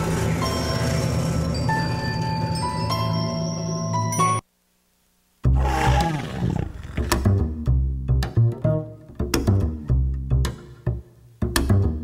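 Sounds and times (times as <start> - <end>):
loud roaring sound effect: 5.5 - 7.1.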